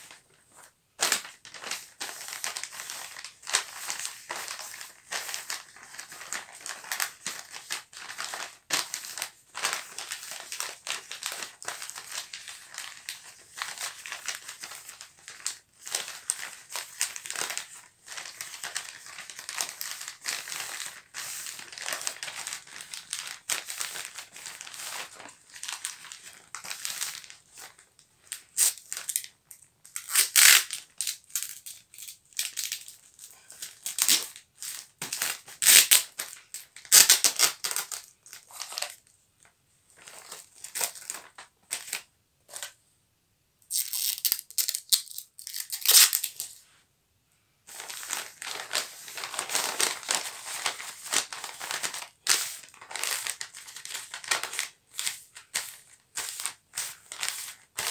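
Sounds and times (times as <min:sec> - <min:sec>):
wrapping paper crinkling: 0:00.0 - 0:39.1, 0:39.9 - 0:42.7, 0:43.7 - 0:46.6, 0:47.7 - 0:57.9.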